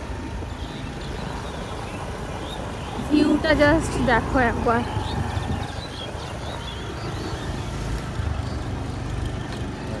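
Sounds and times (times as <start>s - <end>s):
engine rumbling: 0.0s - 10.0s.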